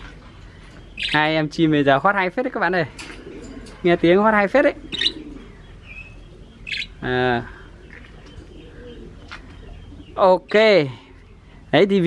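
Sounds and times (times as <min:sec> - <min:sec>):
budgerigars chirping: 0:00.5 - 0:11.7.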